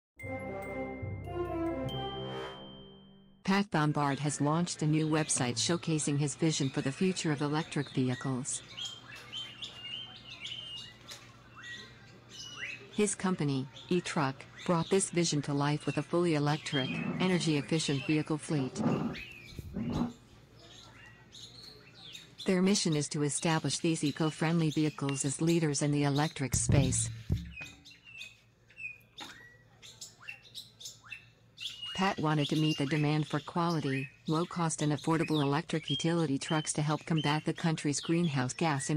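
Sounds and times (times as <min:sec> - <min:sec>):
birds chirping: 0:04.0 - 0:38.9.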